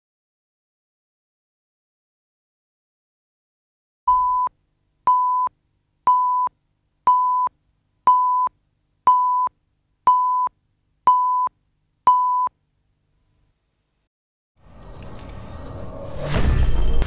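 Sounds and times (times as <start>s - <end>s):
short electronic countdown beeps: 4.1s - 4.5s, 11.1s - 11.5s.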